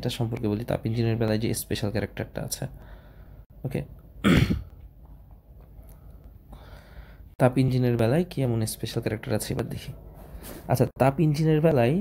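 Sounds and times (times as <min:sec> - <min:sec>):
man clearing throat: 0:04.2 - 0:04.7.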